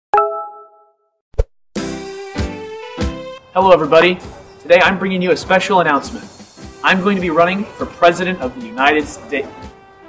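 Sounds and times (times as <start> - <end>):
music: 1.8 - 10.0.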